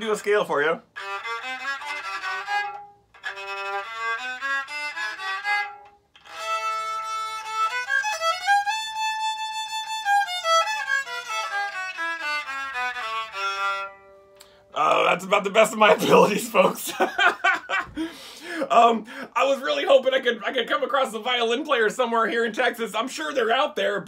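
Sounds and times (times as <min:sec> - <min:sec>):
cigar box violin playing a scale: 0:00.8 - 0:14.8.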